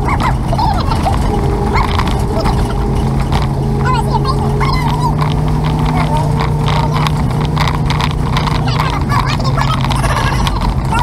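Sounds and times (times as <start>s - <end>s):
vehicle engine and road drone: 0.0s - 11.0s
small ticks and rattles: 0.1s - 11.0s.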